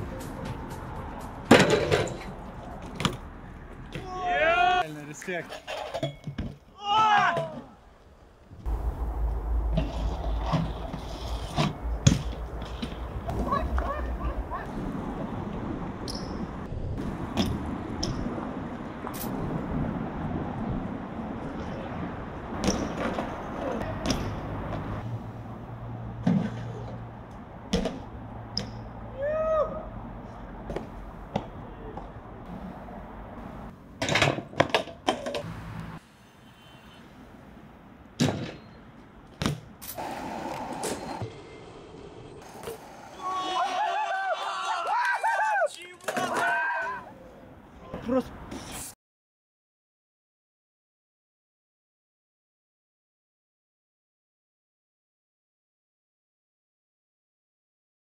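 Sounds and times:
bike landing knocks and clanks: 1.4 - 2.3, 11.6 - 13.4, 22.6 - 24.4, 38.2 - 38.6
bike tyres rolling on paving: 8.1 - 25.0, 40.0 - 47.0.

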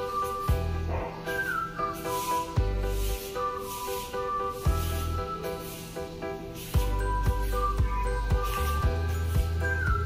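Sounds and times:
background music with held chords: 0.0 - 10.0.

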